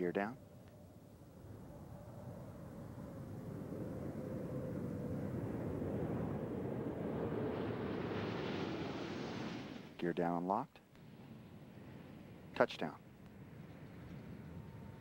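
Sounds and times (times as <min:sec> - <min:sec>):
rushing air of gliding aircraft: 0:02.9 - 0:10.0
faint steady tone: 0:10.6 - 0:15.0.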